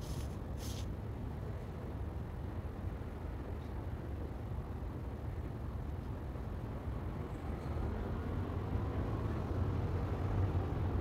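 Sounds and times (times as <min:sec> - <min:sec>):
street traffic rumbling: 0:00.0 - 0:11.0.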